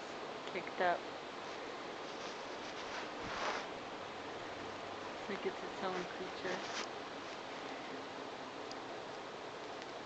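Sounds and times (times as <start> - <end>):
electric fan hissing: 0.0 - 10.0.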